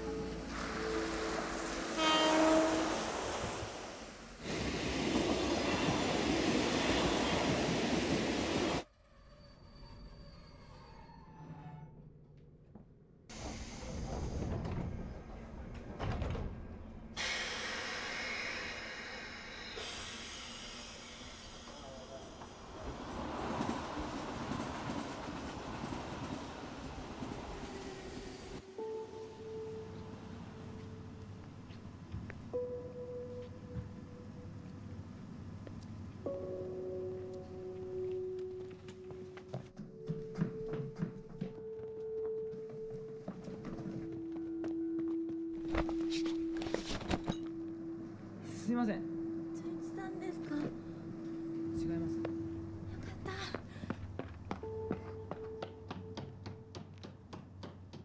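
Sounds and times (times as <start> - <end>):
train rushing past: 0.0 - 8.8, 17.2 - 31.0
horn blast: 1.7 - 3.2.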